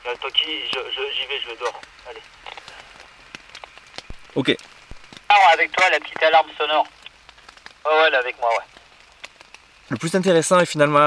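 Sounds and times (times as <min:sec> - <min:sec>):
background hiss: 0:00.0 - 0:11.0
faint irregular ticks and taps: 0:00.7 - 0:00.9, 0:01.6 - 0:05.3, 0:06.1 - 0:07.8, 0:08.6 - 0:10.4.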